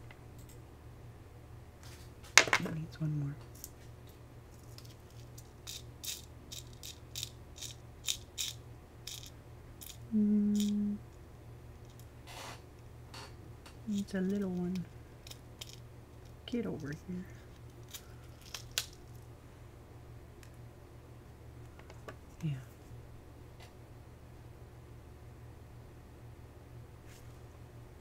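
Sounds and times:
plastic gems rattling in tray: 0:04.7 - 0:10.0, 0:15.3 - 0:15.8
person humming: 0:10.1 - 0:11.0.

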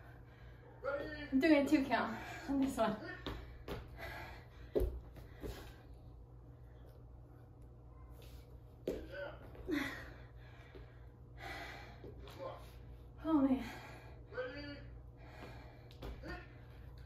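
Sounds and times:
woman breathing hard and gasping: 0:03.6 - 0:06.0, 0:09.6 - 0:12.2, 0:15.2 - 0:16.3.

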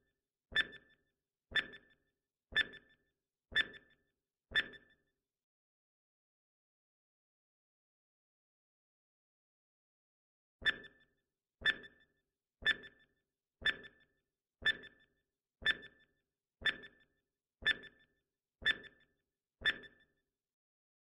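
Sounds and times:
countdown timer blips: 0:00.6 - 0:02.0, 0:02.6 - 0:02.9, 0:03.6 - 0:03.9, 0:04.6 - 0:04.9, 0:10.6 - 0:11.0, 0:11.6 - 0:12.0, 0:12.6 - 0:14.0, 0:14.6 - 0:19.0, 0:19.6 - 0:20.0.

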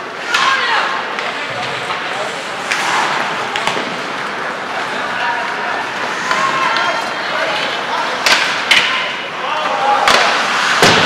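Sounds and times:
indistinct voices: 0:00.0 - 0:10.8
background noise: 0:00.0 - 0:11.0.

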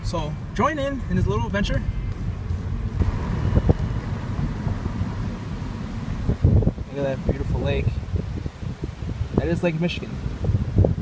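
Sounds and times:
low rumble of moving car: 0:00.0 - 0:11.0
wind buffeting microphone: 0:00.0 - 0:11.0.

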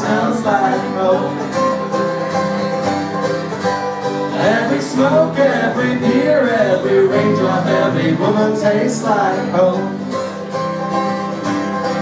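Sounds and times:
person singing: 0:00.0 - 0:01.7, 0:04.3 - 0:10.1
folk band playing: 0:00.0 - 0:12.0.

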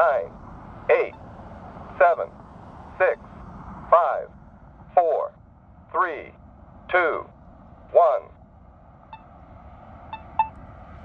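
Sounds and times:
synthesized voice counting down: 0:00.0 - 0:01.2, 0:01.9 - 0:03.3, 0:03.9 - 0:08.4.

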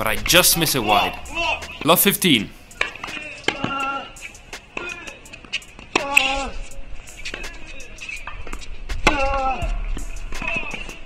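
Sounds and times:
racket striking ball: 0:02.7 - 0:06.6, 0:07.2 - 0:11.0.

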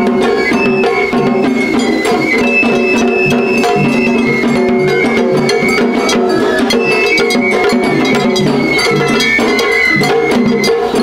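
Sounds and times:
bamboo flutes melody: 0:00.0 - 0:11.0
drums: 0:00.0 - 0:11.0
metallic clanging beat: 0:00.0 - 0:11.0.

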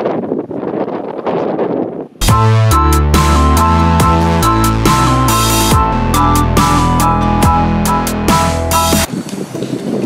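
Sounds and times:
wind buffeting microphone: 0:00.0 - 0:02.2, 0:09.1 - 0:10.0.

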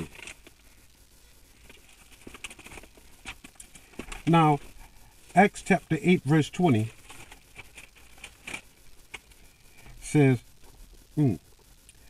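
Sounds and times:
thin paper pages rustling: 0:01.6 - 0:04.8, 0:06.8 - 0:09.4.

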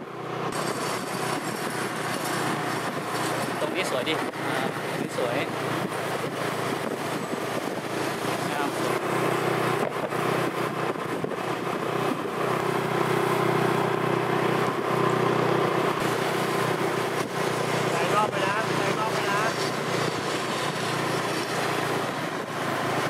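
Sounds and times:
road and wind noise: 0:00.0 - 0:23.0
vehicle engine humming: 0:00.0 - 0:23.0.

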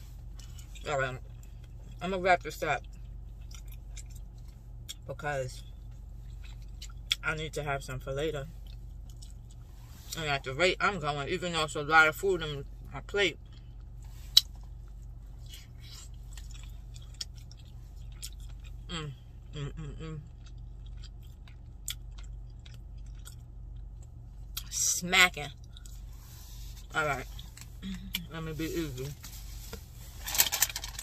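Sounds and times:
steady low hum: 0:00.0 - 0:31.0
person chewing food: 0:02.8 - 0:05.0, 0:05.6 - 0:07.2, 0:08.5 - 0:09.7, 0:13.4 - 0:24.6, 0:25.6 - 0:28.2
plastic container crinkling: 0:30.2 - 0:31.0.

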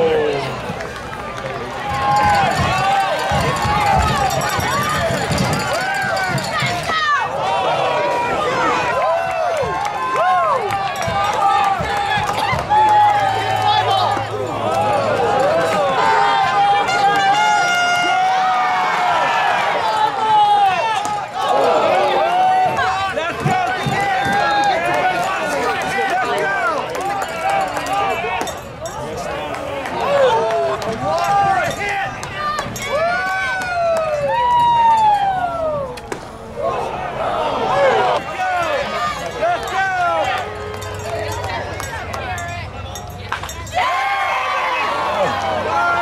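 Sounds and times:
spectators talking and calling out: 0:00.0 - 0:46.0.

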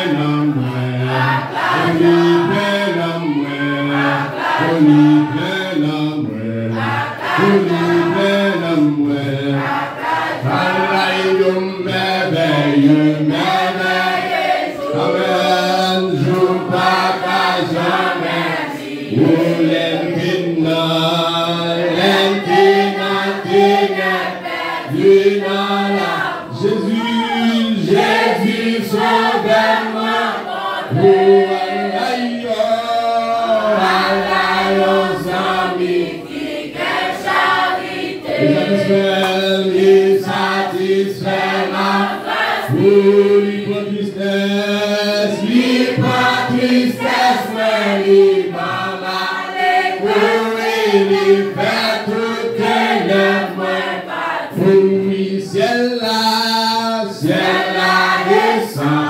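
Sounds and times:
congregation singing a hymn: 0:00.0 - 0:59.0.

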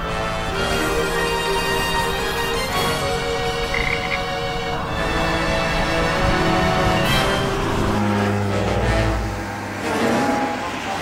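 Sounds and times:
music: 0:00.0 - 0:11.0
cartoon frog croaking: 0:03.5 - 0:04.5.

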